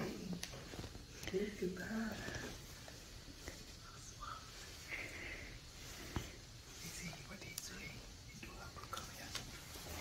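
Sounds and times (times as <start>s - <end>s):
hushed whispering voices: 0.0s - 5.6s, 6.3s - 10.0s.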